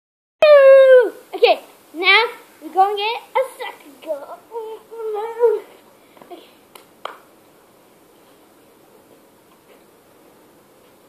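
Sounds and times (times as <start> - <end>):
child calling out: 0.4 - 1.2, 3.4 - 5.7.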